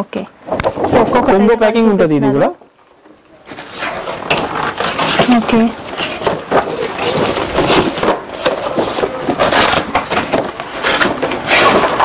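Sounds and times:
paper pages turning and rustling: 0:03.5 - 0:12.0.

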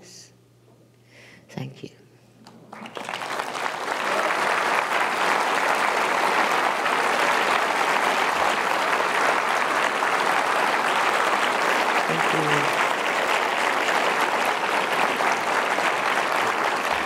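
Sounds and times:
audience applauding: 0:02.6 - 0:17.0.

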